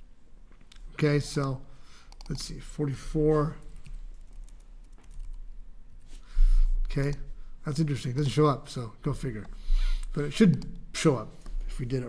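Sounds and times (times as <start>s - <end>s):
soft keyboard keystrokes: 3.4s - 5.4s, 6.9s - 7.3s.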